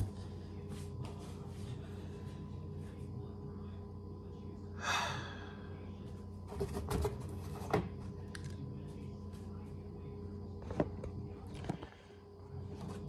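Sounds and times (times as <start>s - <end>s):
steady low hum: 0.0s - 13.0s
man sighing: 4.8s - 5.6s.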